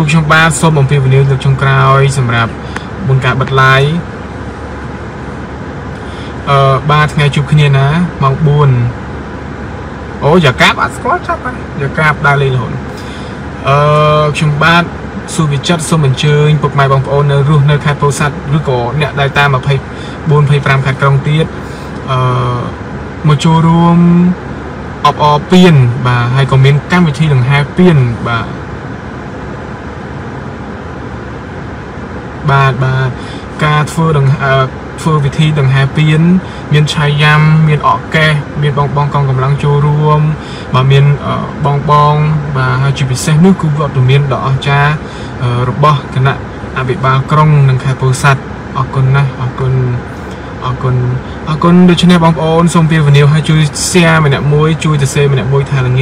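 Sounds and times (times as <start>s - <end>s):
man's voice: 0.0s - 4.1s, 6.0s - 9.0s, 10.2s - 24.4s, 25.0s - 28.6s, 32.4s - 56.0s
car cabin rumble: 0.0s - 56.0s
faint hiss: 25.0s - 56.0s.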